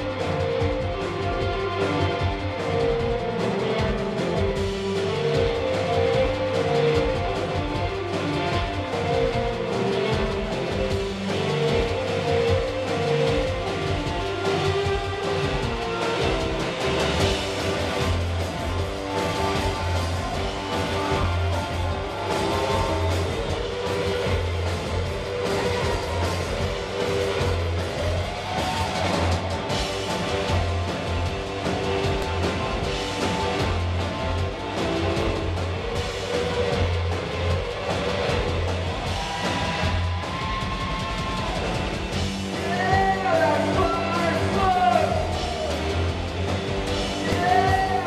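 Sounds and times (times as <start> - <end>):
live rock band playing: 0.0 - 48.0.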